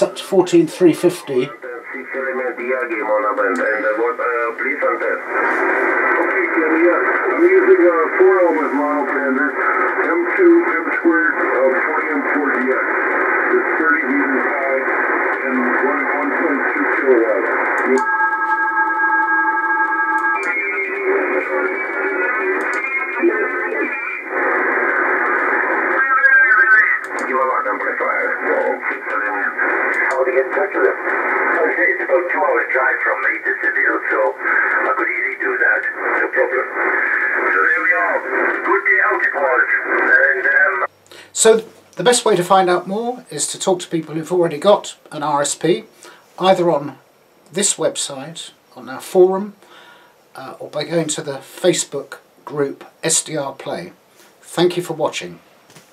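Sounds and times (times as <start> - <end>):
tinny radio voice: 0.0 - 18.0, 20.4 - 41.5
steady radio tones: 0.0 - 55.4.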